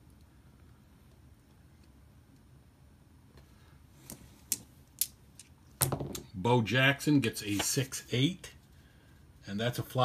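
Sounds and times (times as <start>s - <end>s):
dice knocking on tabletop: 5.8s - 6.3s.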